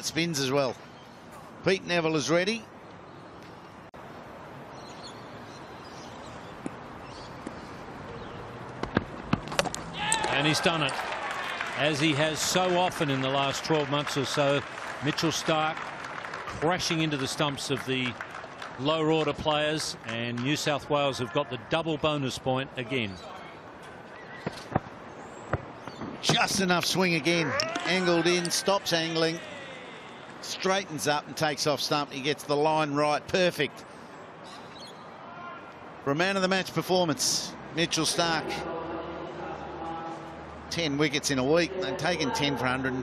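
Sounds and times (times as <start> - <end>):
low steady background noise: 0.0 - 43.0.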